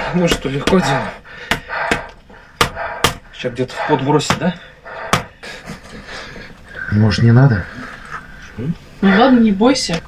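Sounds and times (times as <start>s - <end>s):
wooden mallet striking bare back: 0.2s - 3.3s, 4.2s - 4.5s.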